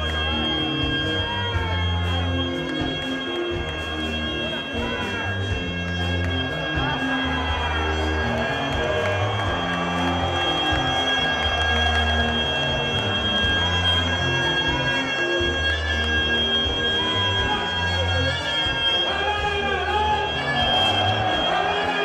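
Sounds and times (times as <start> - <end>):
bass line: 0.0 - 22.0
crowd noise: 0.0 - 22.0.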